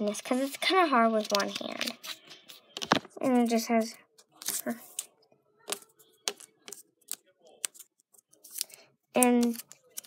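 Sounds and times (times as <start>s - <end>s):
book pages rustling: 0.0s - 3.6s, 4.2s - 10.0s.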